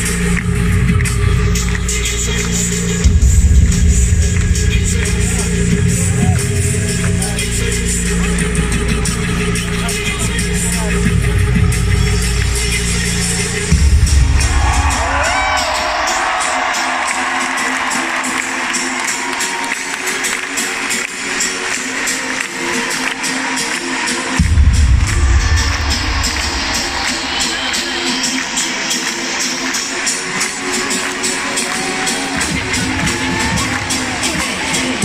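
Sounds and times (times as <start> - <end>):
heavy bass beat: 0.0 - 17.9, 24.0 - 35.0
live pop music: 0.0 - 35.0
crowd cheering: 12.2 - 35.0.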